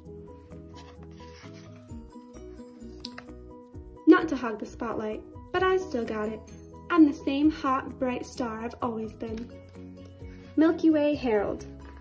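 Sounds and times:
soft background music: 0:00.0 - 0:12.0
book page turning: 0:00.5 - 0:03.4.

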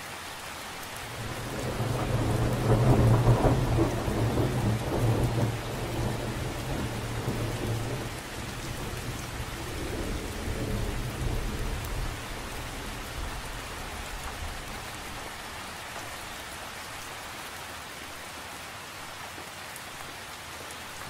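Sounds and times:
steady rain: 0:00.0 - 0:21.0
rolling thunder: 0:01.1 - 0:14.7.

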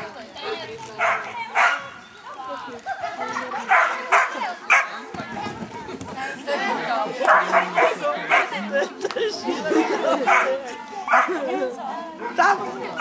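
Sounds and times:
people's voices: 0:00.0 - 0:13.0
dog barking: 0:00.4 - 0:01.9, 0:03.7 - 0:05.0, 0:07.3 - 0:08.5, 0:10.3 - 0:10.5, 0:11.1 - 0:11.4.

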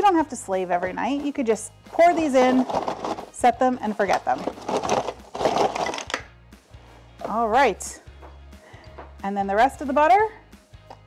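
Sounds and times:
frozen dumplings tumbling into pot: 0:02.0 - 0:03.4, 0:04.2 - 0:06.2.

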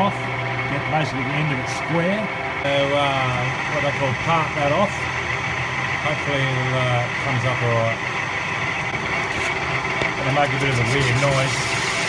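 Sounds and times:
metal lathe running: 0:00.0 - 0:12.0.

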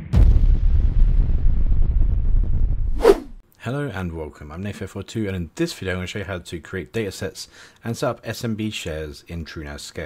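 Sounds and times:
deep rumbling boom: 0:00.0 - 0:03.4
short swish: 0:02.9 - 0:03.4.

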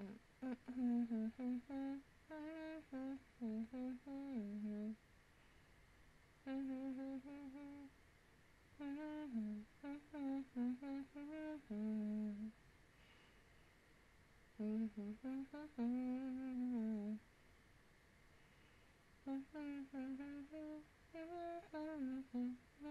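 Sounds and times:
woman humming: 0:00.0 - 0:05.0, 0:06.4 - 0:07.9, 0:08.8 - 0:12.5, 0:14.6 - 0:17.2, 0:19.2 - 0:22.9.

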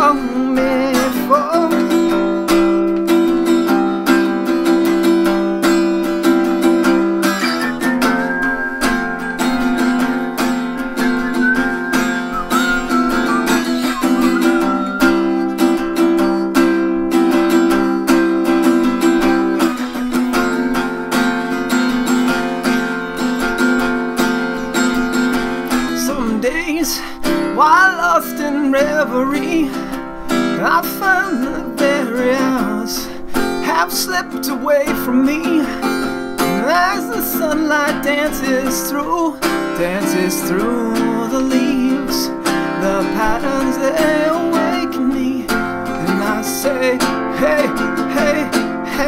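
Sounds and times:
person singing: 0:00.0 - 0:03.0, 0:04.3 - 0:19.8, 0:25.7 - 0:49.0
acoustic guitar strumming chords: 0:00.0 - 0:49.0
high melody line: 0:01.8 - 0:25.8.

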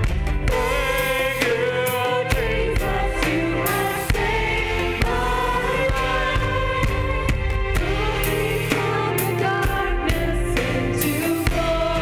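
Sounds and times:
band accompaniment: 0:00.0 - 0:12.0
women singing together: 0:00.5 - 0:12.0.

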